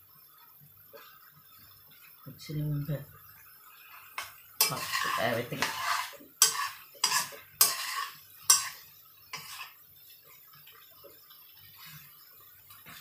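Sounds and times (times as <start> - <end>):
metal spoon scraping a wok: 4.0 - 9.8.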